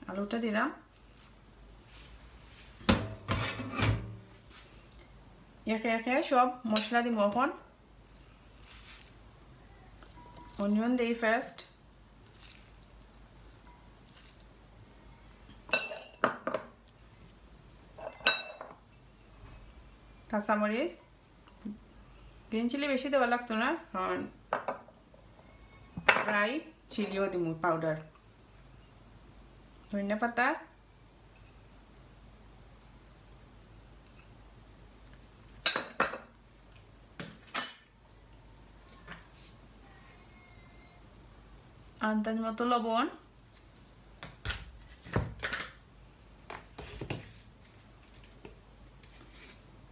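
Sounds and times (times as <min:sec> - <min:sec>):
glass bowls clinking: 0:15.7 - 0:16.4, 0:18.0 - 0:19.0, 0:37.5 - 0:38.0.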